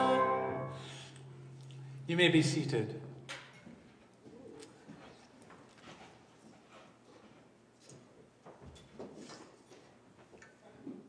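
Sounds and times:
steady low hum: 0.0 - 4.6.

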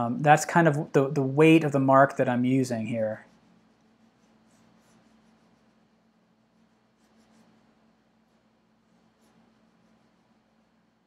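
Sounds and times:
low steady hum: 0.0 - 11.0
pencil scratching on paper: 2.9 - 11.0.

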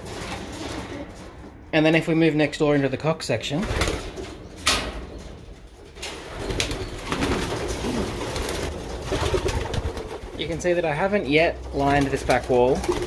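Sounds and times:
pigeons cooing: 6.1 - 10.4.

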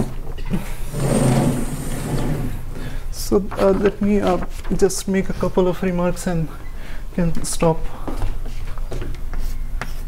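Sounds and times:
sliding chalkboard panel rolling: 0.0 - 2.6.

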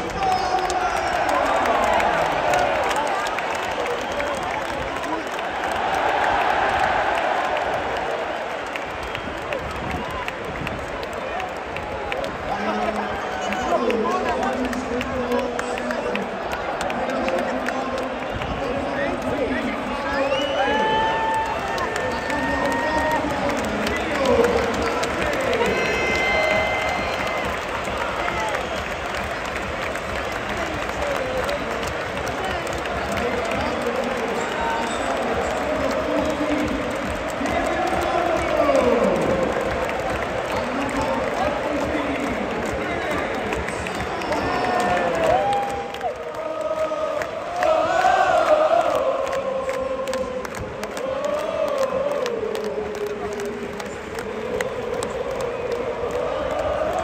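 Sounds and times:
crowd cheering: 0.0 - 57.0
crowd singing and chanting: 33.3 - 57.0.

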